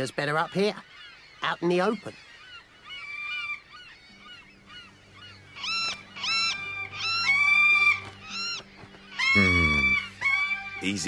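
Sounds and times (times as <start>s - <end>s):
seabirds squawking: 0.0s - 11.0s
low musical drone: 4.0s - 11.0s.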